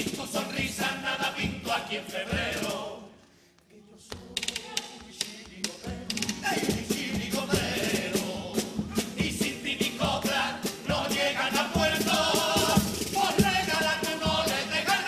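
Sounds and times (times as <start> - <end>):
group singing in chorus: 0.0 - 4.4, 5.1 - 15.0.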